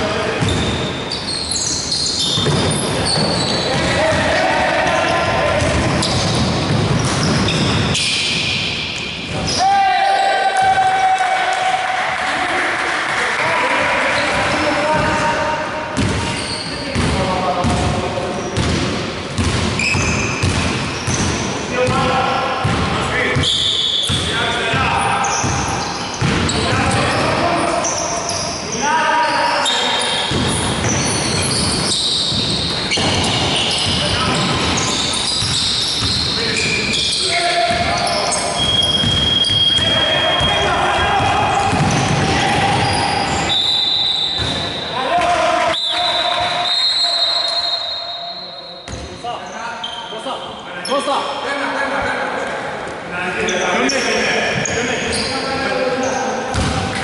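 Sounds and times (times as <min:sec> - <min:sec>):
players calling out: 0:00.0 - 0:18.6, 0:19.8 - 0:48.9
basketball bouncing on hardwood floor: 0:18.6 - 0:21.4, 0:35.4 - 0:36.3, 0:56.5 - 0:56.8.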